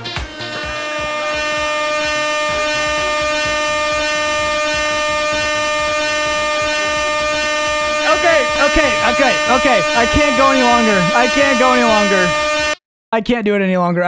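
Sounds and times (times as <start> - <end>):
air horn blast: 0.0 - 12.8
man talking: 8.0 - 12.4.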